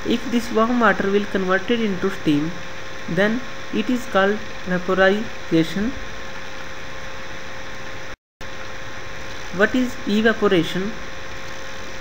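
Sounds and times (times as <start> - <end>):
faint electrical whine: 0.0 - 12.0
recording hiss: 0.0 - 12.0.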